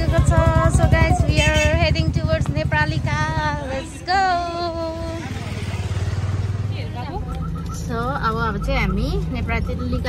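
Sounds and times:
vehicle engine idling: 0:00.0 - 0:10.0
voices talking: 0:00.0 - 0:10.0.

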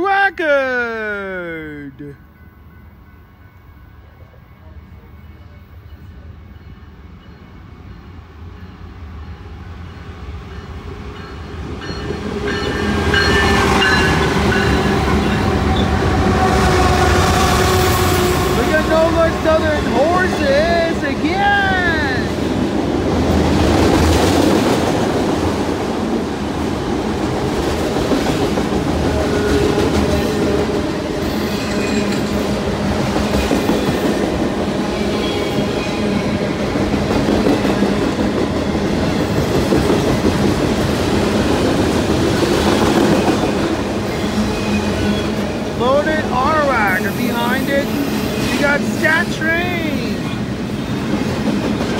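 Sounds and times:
diesel locomotive passing: 0:01.1 - 0:51.9
freight cars rolling by: 0:12.0 - 0:33.3.

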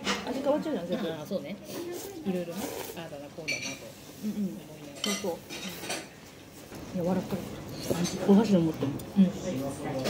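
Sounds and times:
spoon and chopsticks clinking bowl: 0:03.4 - 0:03.9, 0:04.9 - 0:06.1.

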